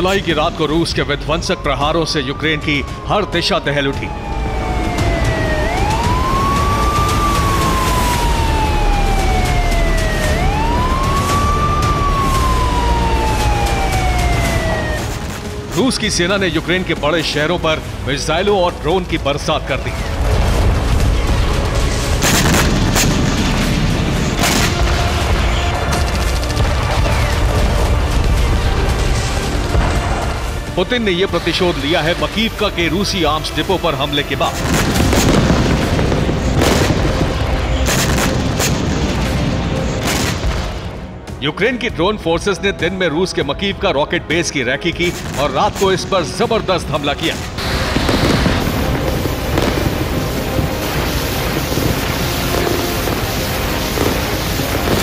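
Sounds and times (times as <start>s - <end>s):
dramatic background music: 0.0s - 55.0s
explosion rumble: 20.0s - 30.6s, 34.6s - 40.9s, 47.5s - 55.0s
sharp explosion blast: 20.2s - 29.1s, 34.6s - 41.0s, 47.5s - 55.0s.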